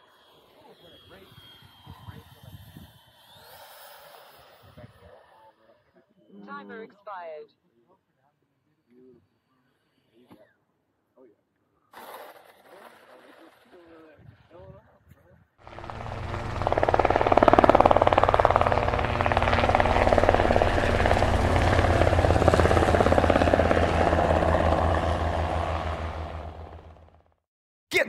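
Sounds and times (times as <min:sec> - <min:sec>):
helicopter rotor beating: 0:15.6 - 0:27.4.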